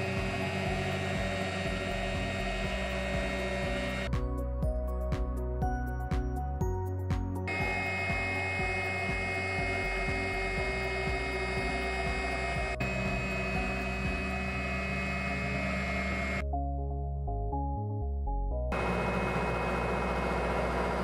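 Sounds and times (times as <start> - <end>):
router spindle whine: 0.0 - 4.1, 7.5 - 16.4, 18.7 - 21.0
background music: 0.0 - 19.3.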